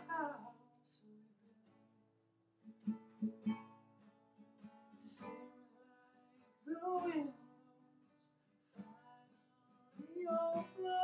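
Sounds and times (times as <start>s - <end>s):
soft acoustic guitar: 0.0s - 11.0s.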